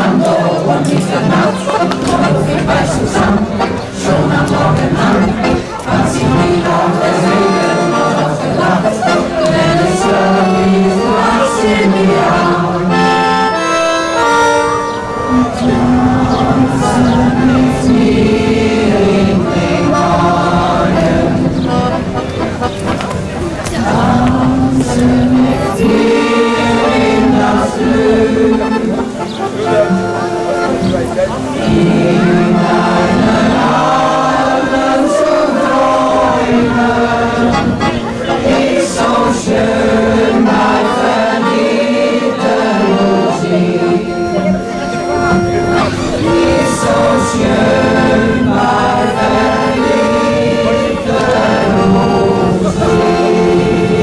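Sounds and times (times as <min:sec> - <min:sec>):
choir singing held notes: 0:00.0 - 0:54.0.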